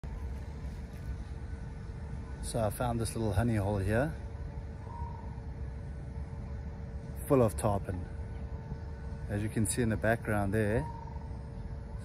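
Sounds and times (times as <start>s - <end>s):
faint steady hum: 0.0s - 12.0s
low outdoor rumble: 0.0s - 12.0s.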